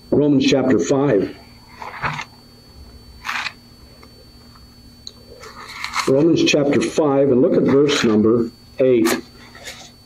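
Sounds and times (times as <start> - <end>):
faint steady hum: 0.0 - 10.0
paper page rustle: 3.2 - 3.6, 5.4 - 6.2.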